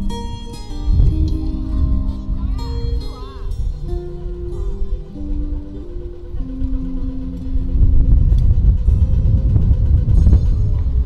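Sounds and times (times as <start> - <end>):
city traffic rumble: 0.0 - 11.0
music of held notes: 0.0 - 11.0.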